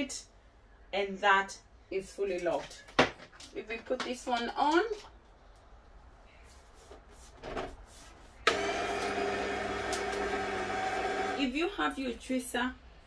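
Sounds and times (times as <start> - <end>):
juicer motor humming: 8.5 - 11.4.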